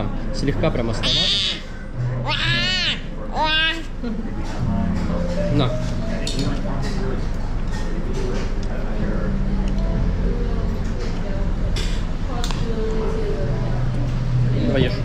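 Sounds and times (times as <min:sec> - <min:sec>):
steady low hum: 0:01.6 - 0:15.0.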